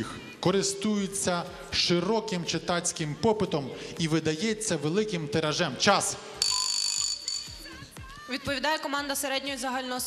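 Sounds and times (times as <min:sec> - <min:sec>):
quiz buzzer electronic tone: 0:06.4 - 0:07.7.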